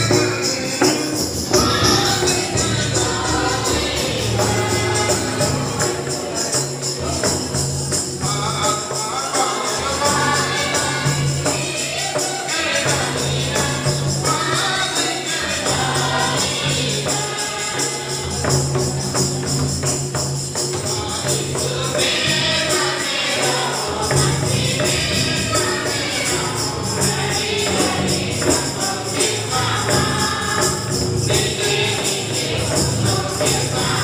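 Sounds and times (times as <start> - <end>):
barrel hand drums: 0.0 - 34.0
group singing a gospel hymn: 0.0 - 34.0
jingling percussion: 0.0 - 34.0.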